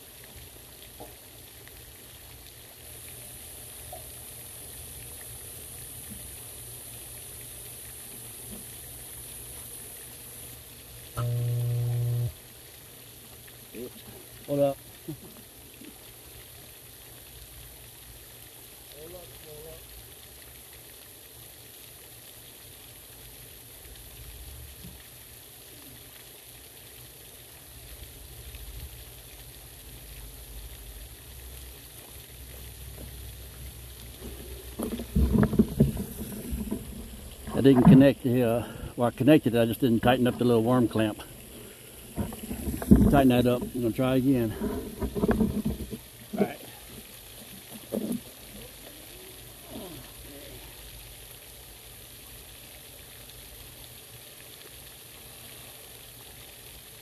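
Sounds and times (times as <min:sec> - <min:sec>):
fountain spray splashing: 0:00.0 - 0:57.0
loud flat buzz: 0:11.1 - 0:12.4.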